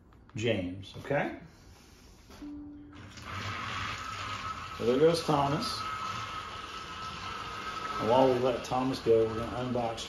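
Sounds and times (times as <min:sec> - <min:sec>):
short steady tone: 0:02.4 - 0:03.0
toy electric motor whining: 0:03.1 - 0:10.0
toy train running on plastic track: 0:03.2 - 0:10.0.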